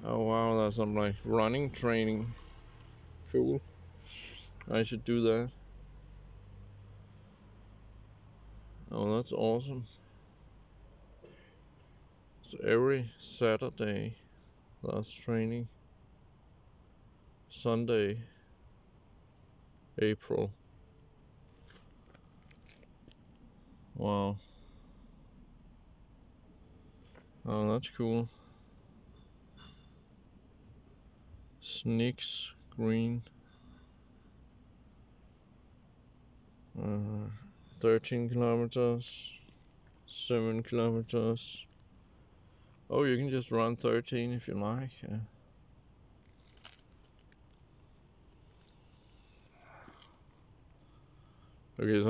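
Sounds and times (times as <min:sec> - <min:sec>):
faint short sounds: 0:46.2 - 0:51.6.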